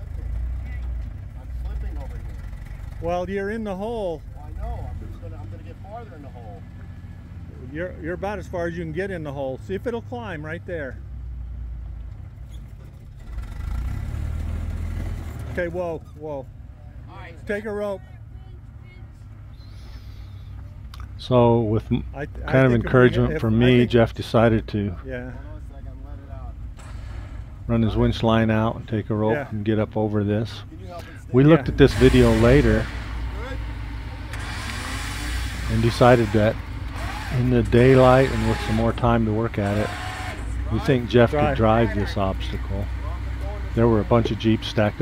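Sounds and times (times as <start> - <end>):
jeep engine pulling under load: 0.0 - 45.0.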